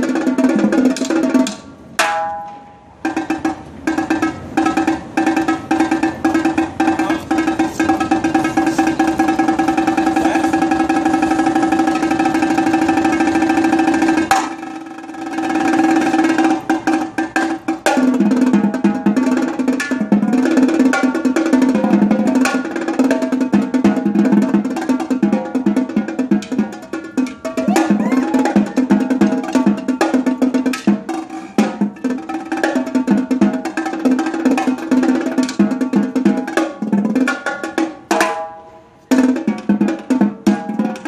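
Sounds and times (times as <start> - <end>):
marching tenor drums: 3.0 - 38.4, 39.1 - 41.0.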